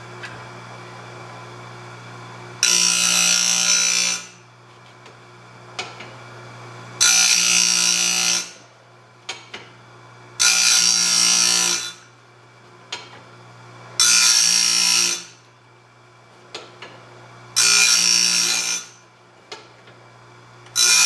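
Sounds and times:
grinder motor humming: 0:02.0 - 0:04.4.

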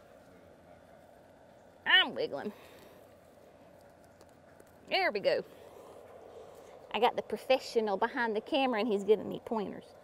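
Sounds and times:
faint background hum: 0:00.0 - 0:10.0
woman's voice: 0:01.9 - 0:02.6, 0:04.9 - 0:05.5, 0:06.9 - 0:09.9.

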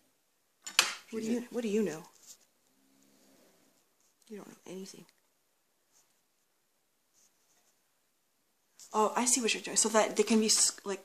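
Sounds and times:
person speaking: 0:00.8 - 0:02.4, 0:04.0 - 0:05.2, 0:08.8 - 0:11.0
faint soft rustles: 0:01.8 - 0:08.0.

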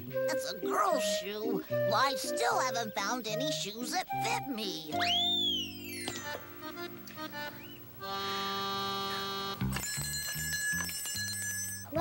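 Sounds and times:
background music: 0:00.0 - 0:10.8
bell ringing: 0:09.6 - 0:12.0.

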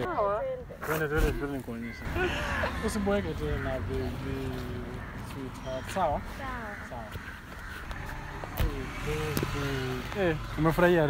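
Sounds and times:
road traffic rumble: 0:00.2 - 0:11.0.

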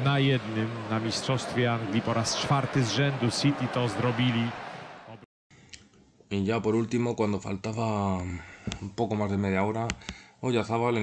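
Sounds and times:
man commentating: 0:00.0 - 0:05.2.

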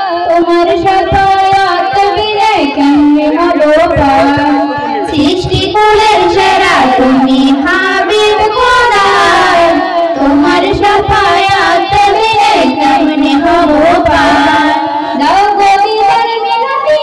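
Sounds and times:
girls singing into microphones: 0:00.0 - 0:17.0.

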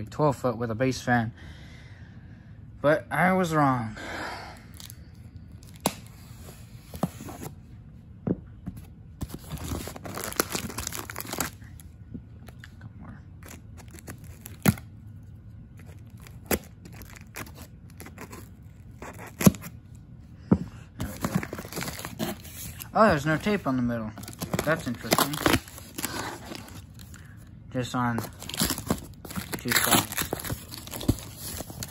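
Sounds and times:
tape tearing: 0:13.4 - 0:14.8, 0:15.8 - 0:19.7, 0:24.2 - 0:27.2, 0:28.2 - 0:31.9
knife slitting packing tape: 0:16.1 - 0:19.7.

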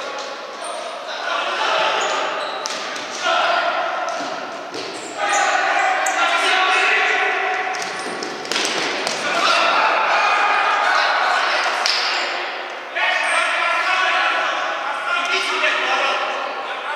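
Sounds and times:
players calling out: 0:00.0 - 0:16.9.

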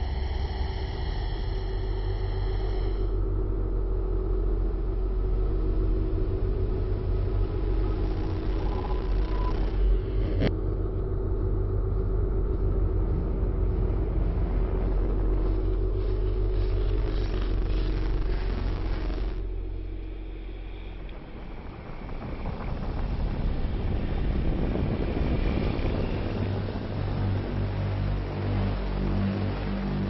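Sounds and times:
low rumbling drone: 0:00.0 - 0:30.0
static hiss: 0:07.1 - 0:10.5, 0:15.3 - 0:21.2.

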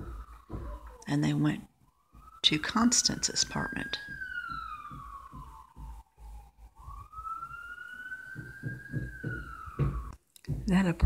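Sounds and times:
distant siren wailing: 0:00.0 - 0:11.0.

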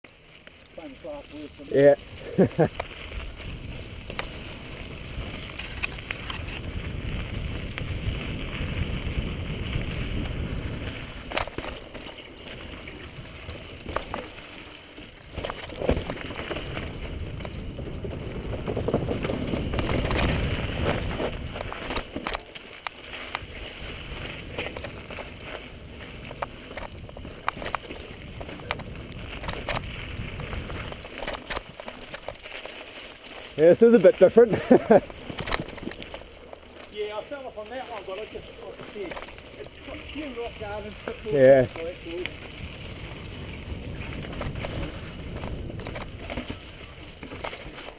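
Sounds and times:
bike tyres rolling over dirt: 0:00.0 - 0:47.9
bike knocking and rattling: 0:00.1 - 0:47.9
wind rushing over microphone: 0:01.9 - 0:11.5, 0:15.3 - 0:22.0, 0:23.3 - 0:31.6, 0:39.6 - 0:47.5.

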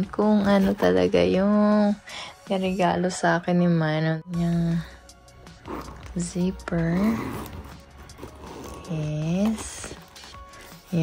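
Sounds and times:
metal zipper being pulled open: 0:05.5 - 0:10.3.

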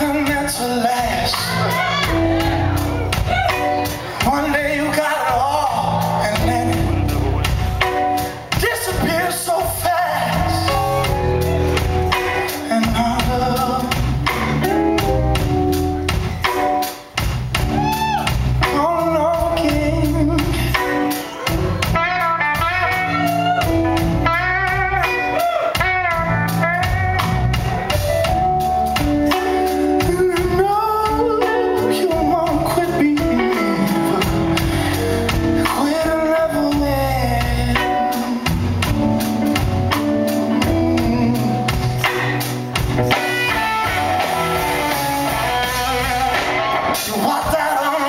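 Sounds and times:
bass guitar: 0:00.0 - 0:48.0
blues band playing: 0:00.0 - 0:48.0
electric guitars: 0:00.0 - 0:48.0
drum kit hits: 0:32.2 - 0:48.0.

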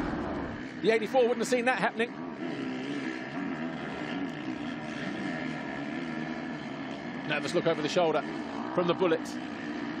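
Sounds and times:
motocross bike engines revving: 0:00.0 - 0:10.0.

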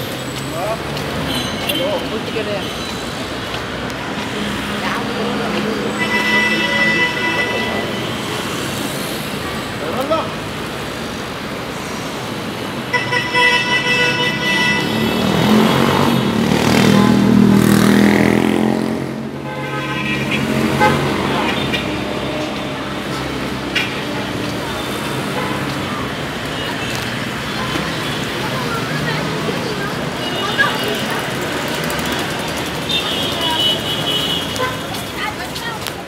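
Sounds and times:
traffic din: 0:00.0 - 0:36.0
car horns: 0:05.7 - 0:08.7, 0:12.8 - 0:17.2, 0:19.3 - 0:22.5, 0:30.1 - 0:35.0.

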